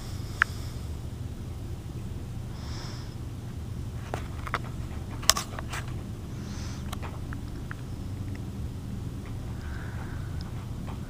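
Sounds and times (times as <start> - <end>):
steady low rumble: 0.0 - 11.0
phone handling clicks: 4.1 - 5.9.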